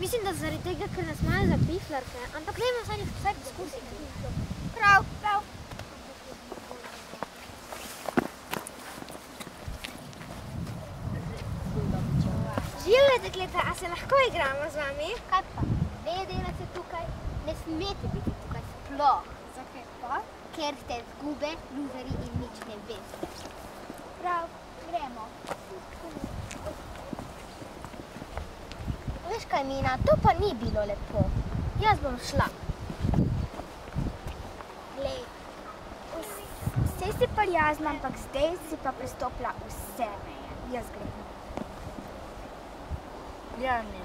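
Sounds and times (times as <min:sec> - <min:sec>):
wind on microphone: 0:00.0 - 0:08.4, 0:09.0 - 0:19.5, 0:21.0 - 0:44.0
footsteps on asphalt: 0:06.5 - 0:10.8, 0:23.0 - 0:24.1, 0:25.4 - 0:29.1, 0:32.8 - 0:34.8, 0:41.5 - 0:42.2.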